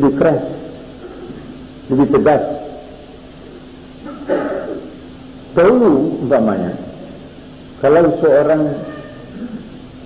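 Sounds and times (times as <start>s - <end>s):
recording hum and hiss: 0.0s - 10.0s.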